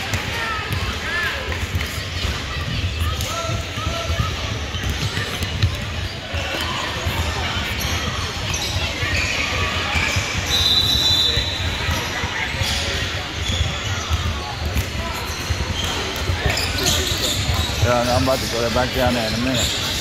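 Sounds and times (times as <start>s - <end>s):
basketball bouncing: 0.0s - 10.5s, 11.6s - 17.9s
voices echoing in a hall: 0.0s - 20.0s
sneakers squeaking on hardwood floor: 2.2s - 20.0s
referee's whistle: 9.9s - 12.0s.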